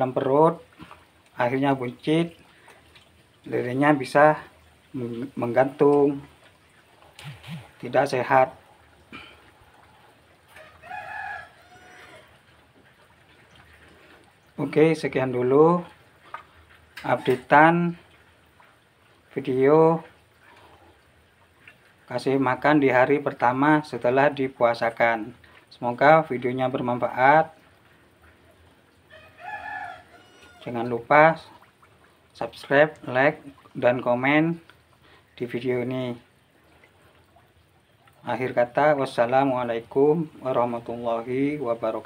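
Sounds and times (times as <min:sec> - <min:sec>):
rooster crowing: 0:10.5 - 0:12.4, 0:29.1 - 0:30.7.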